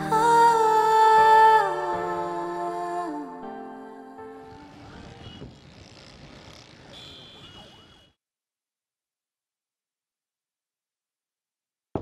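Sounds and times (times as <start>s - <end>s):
city street traffic: 4.4s - 8.2s
faint wavering siren-like tone: 4.8s - 8.2s.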